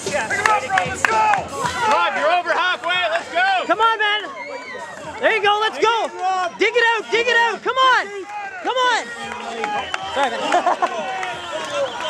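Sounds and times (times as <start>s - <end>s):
crowd noise: 0.0s - 12.0s
men shouting encouragement: 5.1s - 12.0s.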